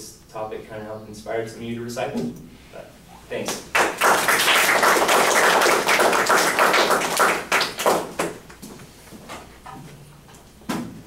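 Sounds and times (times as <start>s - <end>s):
audience applauding: 3.7s - 8.4s.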